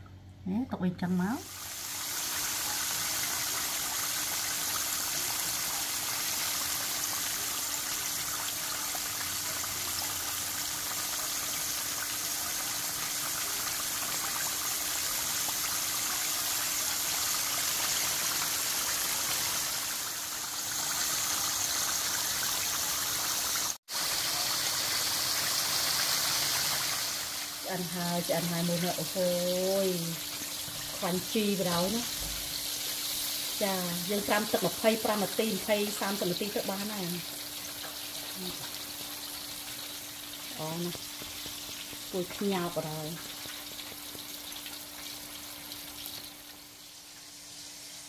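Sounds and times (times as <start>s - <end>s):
chicken deep-frying in oil: 1.0s - 48.0s.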